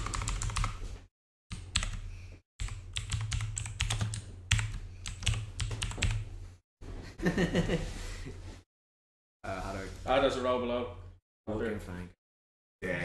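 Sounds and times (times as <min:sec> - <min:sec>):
computer keyboard typing: 0:00.0 - 0:00.8, 0:01.5 - 0:06.3.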